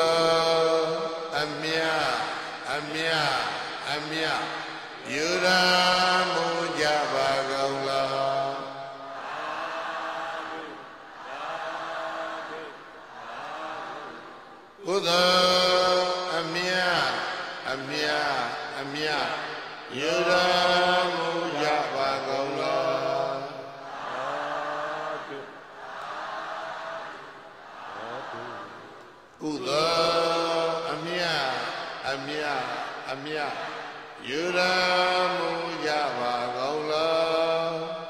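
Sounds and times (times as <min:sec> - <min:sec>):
man chanting in long held notes: 0:00.0 - 0:08.8
man chanting: 0:00.0 - 0:09.0, 0:14.8 - 0:23.7, 0:29.4 - 0:38.0.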